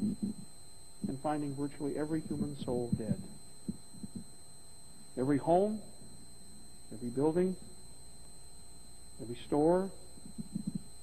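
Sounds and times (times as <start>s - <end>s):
soft low thumps: 0.0s - 5.1s, 10.1s - 11.0s
faint high-pitched tone: 0.0s - 11.0s
steady low hum: 0.0s - 11.0s.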